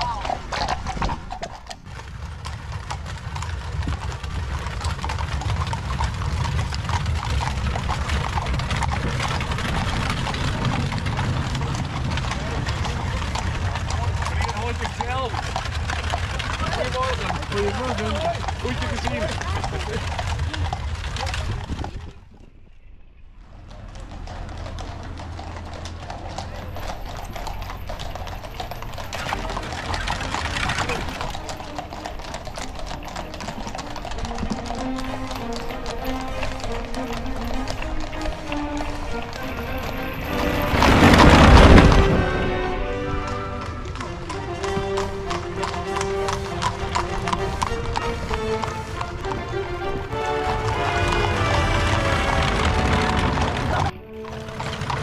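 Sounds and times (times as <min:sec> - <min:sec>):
hooves clip-clopping on pavement: 0:00.0 - 0:55.0
music playing: 0:41.9 - 0:54.9.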